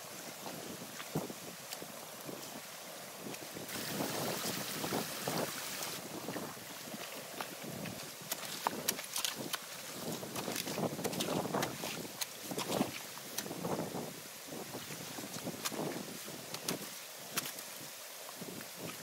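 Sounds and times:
water rushing and splashing: 0.0 - 19.0
rake working sticks and mud: 3.2 - 6.1, 7.4 - 13.9, 14.7 - 17.8
wind buffeting microphone: 3.2 - 16.9.

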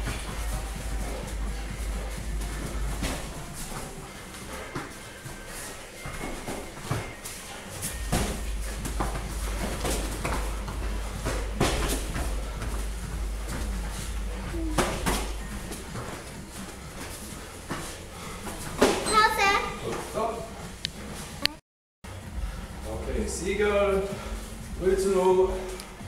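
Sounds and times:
low steady rumble: 0.0 - 3.6
gloved punches and kicks thudding: 0.0 - 3.9, 7.8 - 16.2
feet landing on foam mats: 0.0 - 19.1
person calling out: 14.5 - 15.0.

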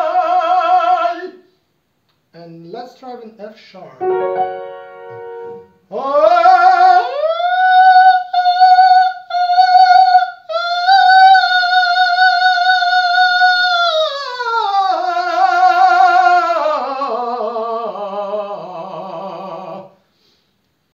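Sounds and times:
tenor singing high notes: 4.0 - 6.1.

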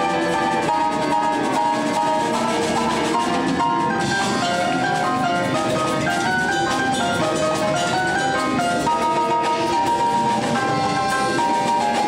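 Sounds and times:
latin jazz band playing: 0.0 - 12.0
vibraphone melody: 0.0 - 12.0.

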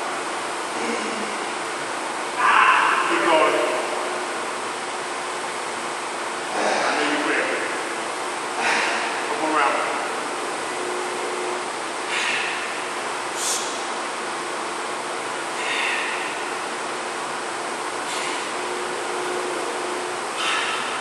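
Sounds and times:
indistinct voice bursts: 2.4 - 3.7.

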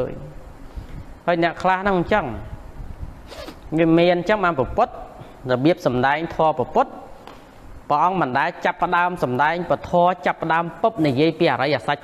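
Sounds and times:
short hiss: 3.2 - 3.7
man preaching: 3.7 - 7.1, 7.9 - 12.0.

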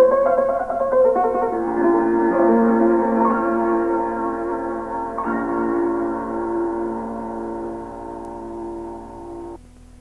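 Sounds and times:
held piano chord: 0.0 - 9.6
faint low hum: 0.0 - 10.0.

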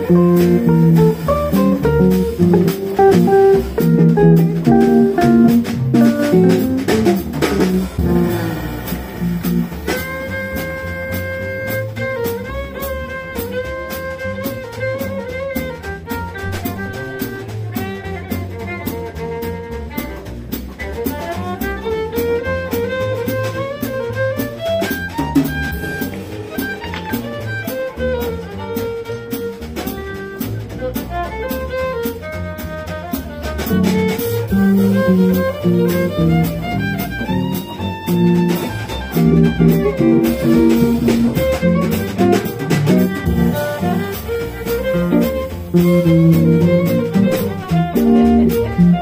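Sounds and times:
violin bowed notes: 0.0 - 19.3, 21.2 - 30.4, 31.1 - 49.0
double bass: 0.0 - 49.0
drums: 0.0 - 49.0
guitar: 0.0 - 49.0.

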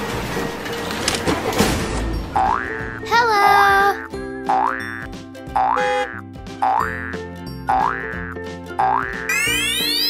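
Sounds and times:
children's background music: 1.6 - 10.0.

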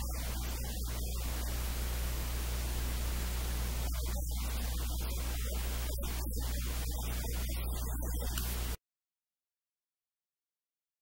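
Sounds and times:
static hiss: 0.0 - 8.8.

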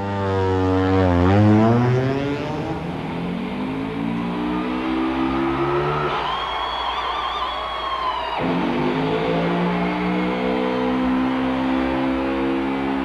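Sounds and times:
race car engines shifting gears: 0.9 - 6.6, 8.4 - 13.0.

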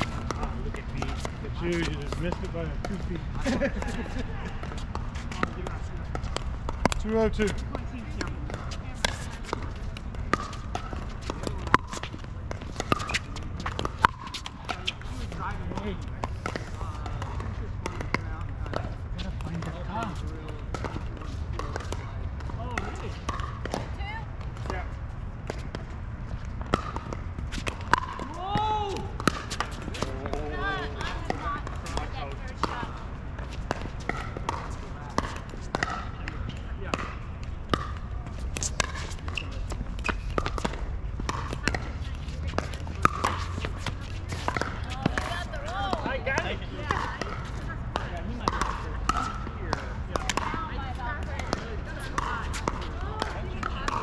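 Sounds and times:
voices: 0.0 - 25.0, 26.7 - 54.0.

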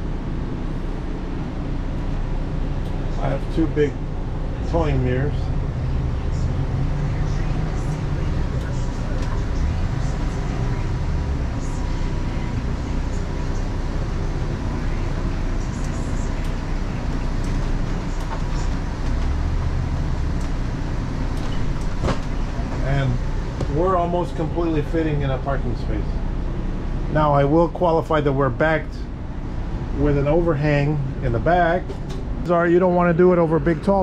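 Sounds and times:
engine low drone: 0.0 - 34.0.

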